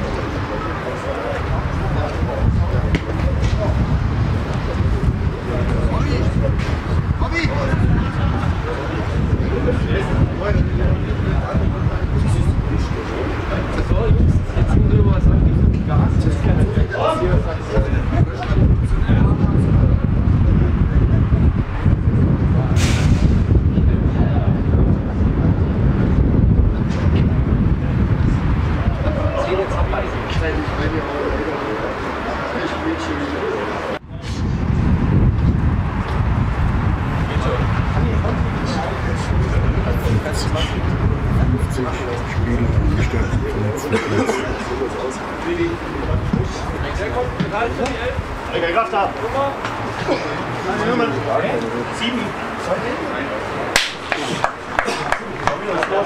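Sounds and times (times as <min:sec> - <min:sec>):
wind buffeting microphone: 0:00.0 - 0:32.3, 0:33.9 - 0:56.0
faint distant voices: 0:00.0 - 0:34.9
brief sharp sound: 0:22.8 - 0:23.4.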